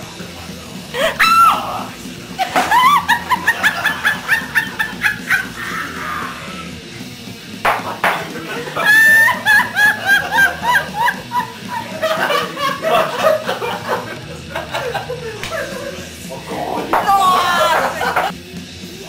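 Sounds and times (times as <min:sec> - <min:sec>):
high-pitched laughter: 0:01.0 - 0:01.8, 0:02.4 - 0:06.6, 0:08.6 - 0:16.0
sharp knock: 0:07.6 - 0:08.2.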